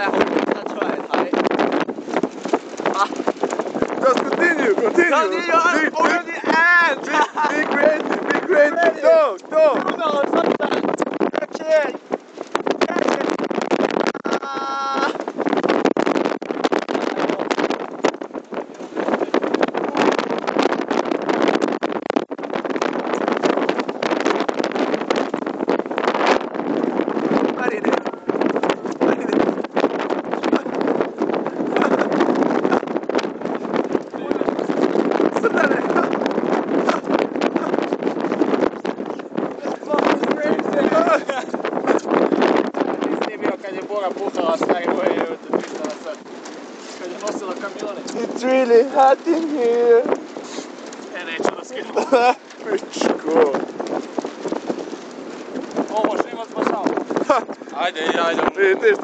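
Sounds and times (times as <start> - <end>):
wind buffeting microphone: 0.0 - 59.0
men exclaiming: 4.0 - 10.8, 14.2 - 15.2, 39.6 - 41.6.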